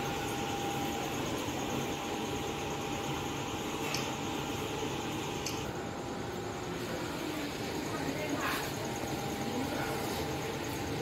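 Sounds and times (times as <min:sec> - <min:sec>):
fan whirring: 0:00.0 - 0:11.0.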